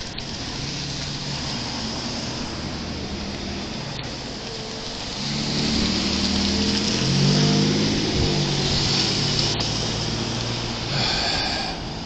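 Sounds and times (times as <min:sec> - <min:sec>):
car engine passing by: 0:00.0 - 0:12.0
tyre hiss: 0:08.3 - 0:12.0.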